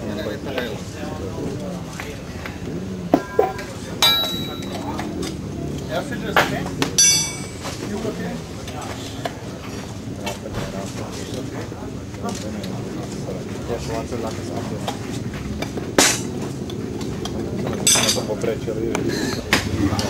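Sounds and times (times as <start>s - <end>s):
sharp metallic strikes: 3.2s - 5.0s, 7.0s - 7.8s
tyre levers clinking on metal rim: 4.0s - 5.1s, 7.0s - 7.8s.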